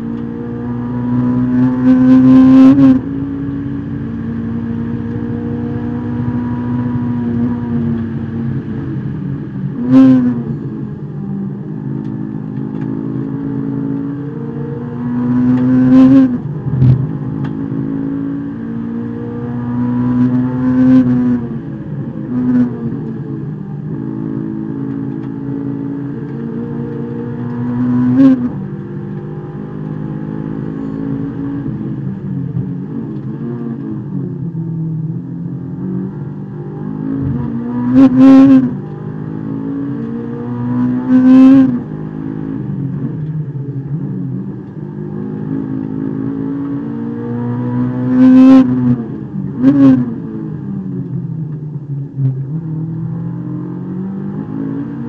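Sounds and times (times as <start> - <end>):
race car engine revving: 11.5 - 51.6, 52.4 - 55.0.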